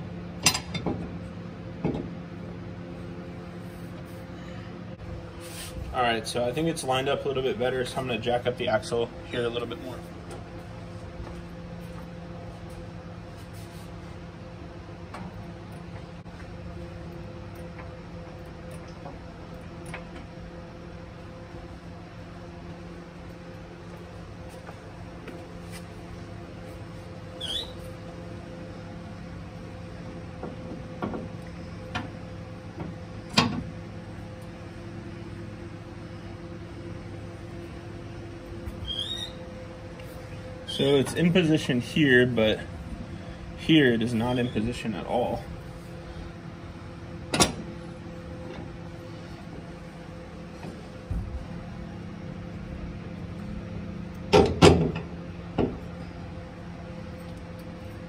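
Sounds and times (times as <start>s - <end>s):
steady background hum: 0.0s - 58.0s
brief squeaks: 27.4s - 27.9s, 38.8s - 39.4s.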